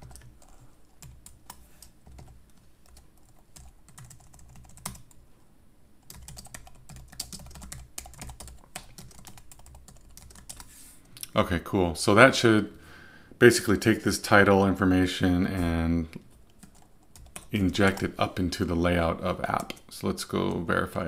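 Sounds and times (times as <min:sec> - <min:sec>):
computer keyboard typing: 0:00.0 - 0:05.2, 0:06.0 - 0:10.7, 0:16.5 - 0:18.2.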